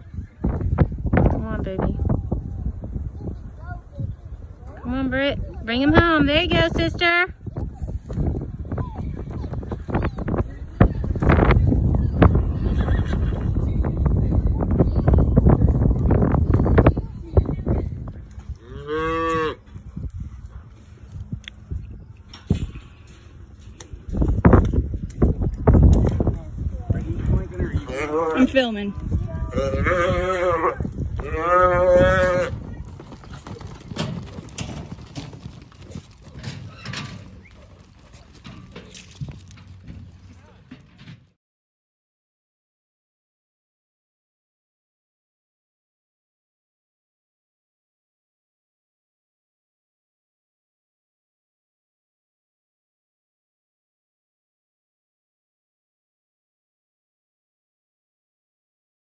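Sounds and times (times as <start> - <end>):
horse hoofbeats on dirt: 5.5 - 41.4.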